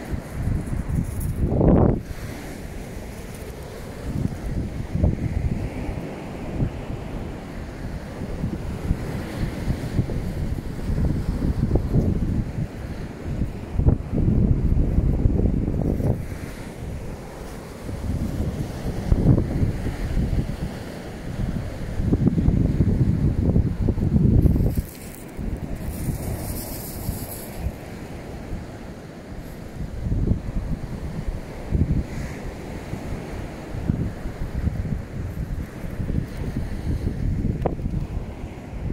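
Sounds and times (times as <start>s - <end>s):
surf washing on shore: 0.0s - 38.9s
wind buffeting microphone: 0.0s - 38.9s.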